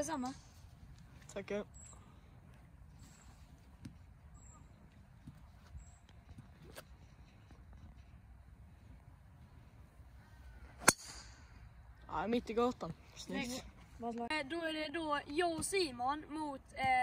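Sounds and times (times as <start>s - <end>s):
golf driver striking ball: 10.8s - 11.4s.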